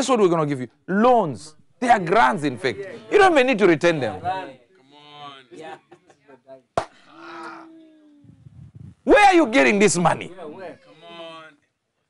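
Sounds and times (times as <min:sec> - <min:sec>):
person humming low mmm: 0:07.4 - 0:09.0.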